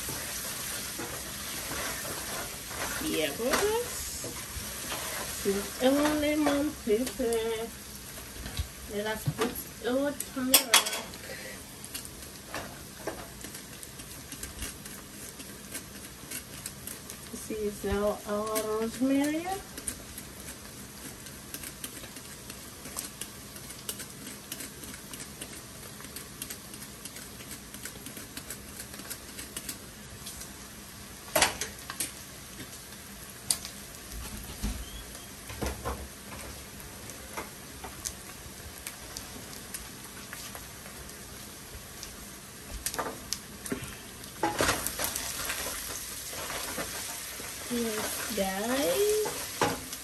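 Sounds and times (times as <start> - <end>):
wooden spatula scraping pot: 0.0 - 7.3, 45.5 - 49.6
meat sizzling in a pot: 0.0 - 27.7, 29.2 - 50.0.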